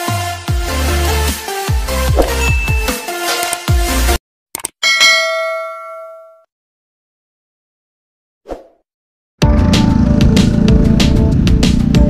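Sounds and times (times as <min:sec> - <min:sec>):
bell-like notification ding: 0:02.2 - 0:03.1, 0:04.8 - 0:06.5.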